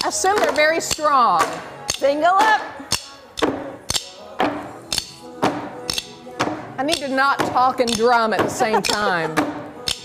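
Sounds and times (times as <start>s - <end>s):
background music with steady beat: 0.0s - 10.0s
drumsticks clacking together: 0.4s - 4.2s, 4.9s - 6.2s, 7.8s - 10.0s.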